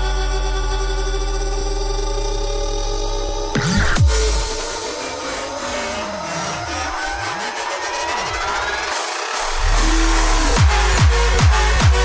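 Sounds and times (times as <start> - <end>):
sliding low bass notes: 0.0 - 7.2, 9.4 - 12.0
hissing noise riser: 3.6 - 11.0
synth tones sweeping upward: 3.6 - 11.8.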